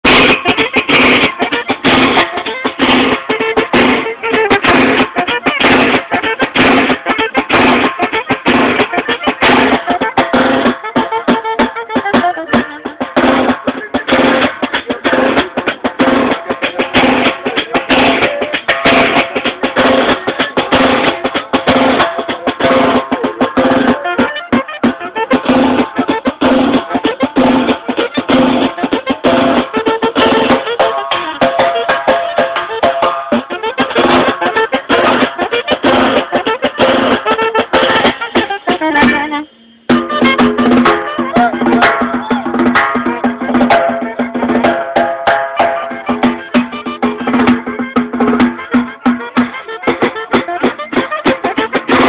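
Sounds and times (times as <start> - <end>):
drum kit fast beat: 0.0 - 52.0
button accordion melody: 0.2 - 44.8, 45.4 - 52.0.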